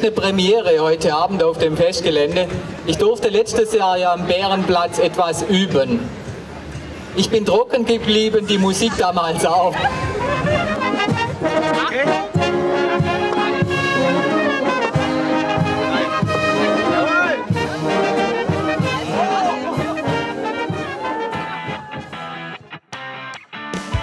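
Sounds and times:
brass band playing: 9.9s - 22.6s.

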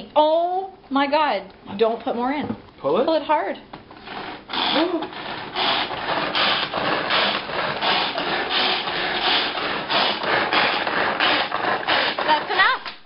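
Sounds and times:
food chopper blades whirring: 4.0s - 13.0s.

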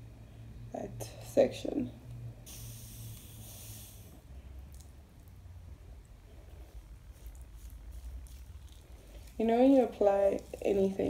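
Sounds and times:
spray bottle misting hiss: 2.5s - 4.2s
hands handling hair: 6.7s - 11.0s.

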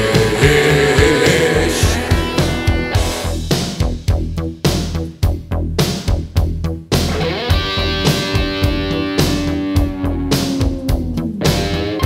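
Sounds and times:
electric guitar sustained notes: 0.0s - 3.4s, 7.1s - 12.0s
bass guitar: 0.0s - 12.0s
drums: 0.0s - 12.0s.

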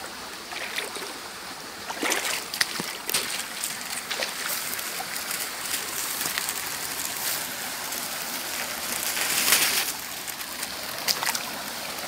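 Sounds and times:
shallow stream flowing: 0.0s - 12.0s.

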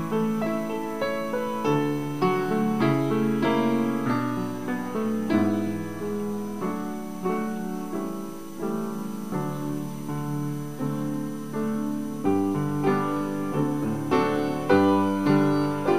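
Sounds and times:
slow solo piano piece: 0.0s - 15.9s.

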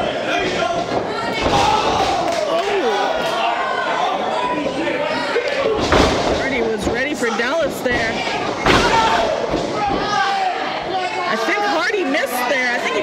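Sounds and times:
voices shouting: 0.0s - 6.0s, 7.0s - 13.0s
bodies slamming on ring mat: 1.2s - 2.3s, 5.7s - 7.0s, 8.0s - 10.2s.

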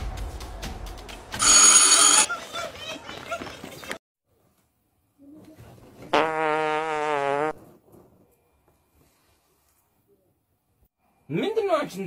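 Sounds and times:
electronic ringing tone: 1.4s - 2.3s.

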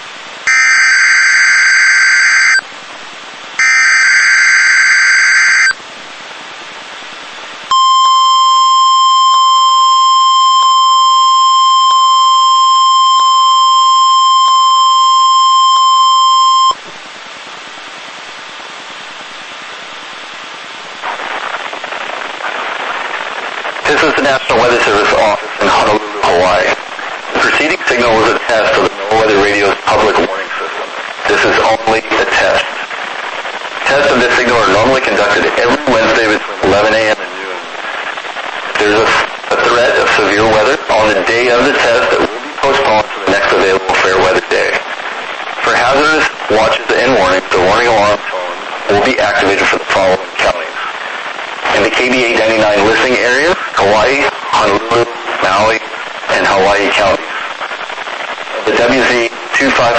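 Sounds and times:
radio hiss: 0.0s - 59.9s
voice over radio: 23.8s - 33.0s, 33.8s - 37.8s, 38.7s - 45.0s, 45.6s - 57.5s, 58.5s - 59.9s.

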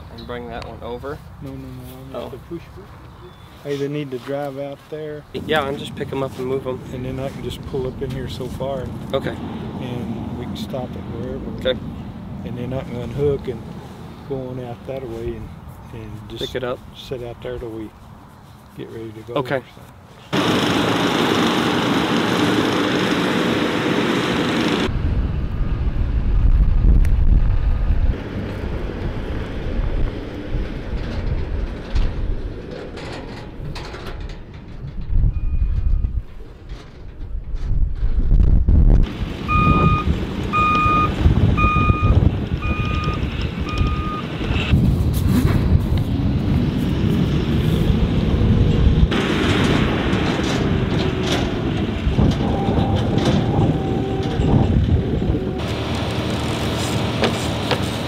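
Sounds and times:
backup alarm beeping: 39.5s - 44.3s.

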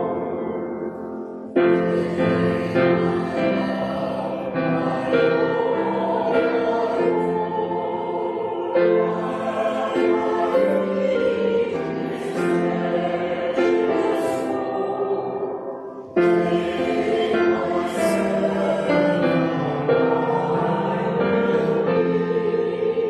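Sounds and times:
church choir singing: 0.0s - 23.0s.

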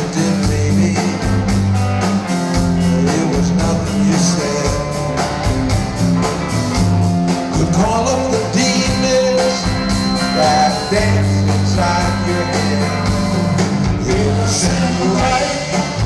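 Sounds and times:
bass notes: 0.0s - 16.0s
electric guitar: 0.0s - 16.0s
steady drum beat: 0.0s - 16.0s.

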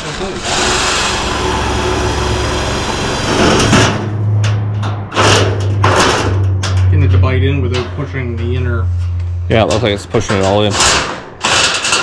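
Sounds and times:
cordless drill driving screws: 0.1s - 3.7s
steady low hum: 0.4s - 10.8s.

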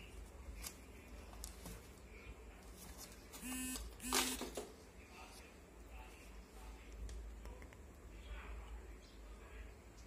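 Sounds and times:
short flat buzzes: 3.4s - 4.4s.

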